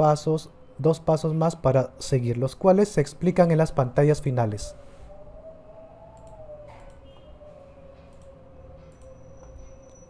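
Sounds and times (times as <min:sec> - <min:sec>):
soft clicks: 0:06.1 - 0:07.4, 0:08.0 - 0:10.0.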